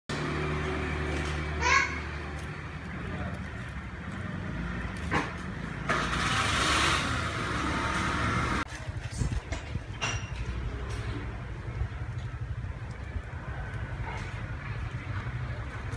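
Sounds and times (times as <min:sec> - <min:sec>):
motor vehicle rumble: 0:00.1 - 0:15.9.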